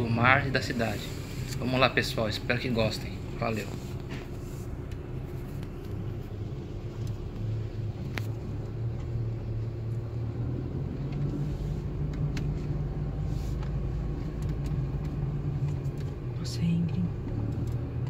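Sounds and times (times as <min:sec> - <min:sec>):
car engine hum: 0:00.0 - 0:18.0.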